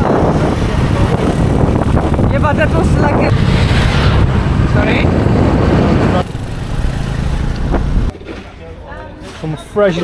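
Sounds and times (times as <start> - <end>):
scooter engine: 0.0 - 8.1
wind buffeting microphone: 0.0 - 8.1.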